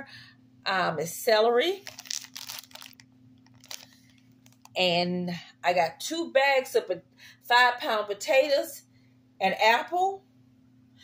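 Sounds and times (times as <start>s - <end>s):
plastic bag crinkling: 1.7s - 4.8s.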